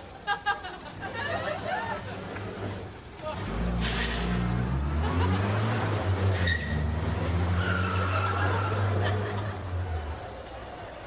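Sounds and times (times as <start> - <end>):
vehicle engine starting and running: 0.9 - 11.0.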